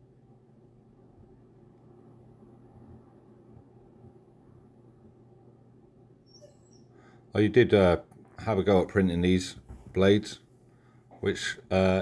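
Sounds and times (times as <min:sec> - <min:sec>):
distant dog whimpering: 0:06.2 - 0:07.0.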